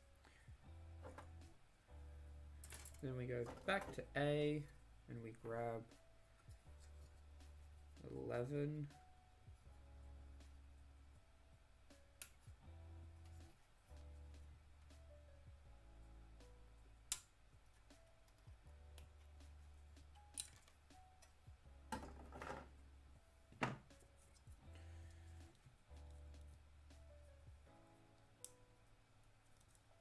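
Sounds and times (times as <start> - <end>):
quiet background music: 0.0 - 30.0.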